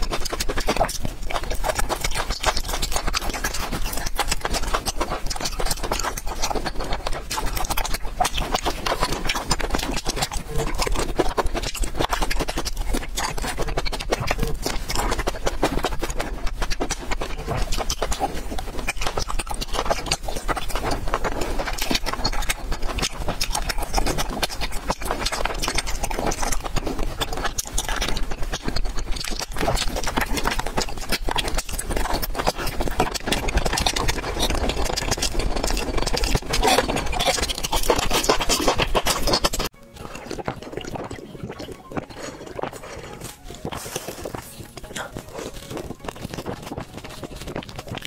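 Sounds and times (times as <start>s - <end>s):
chewing candy with wet clicks: 0.0s - 48.0s.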